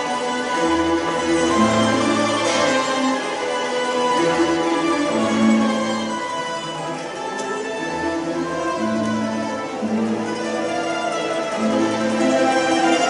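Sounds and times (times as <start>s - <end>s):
mandolin orchestra tremolo: 0.0s - 13.0s.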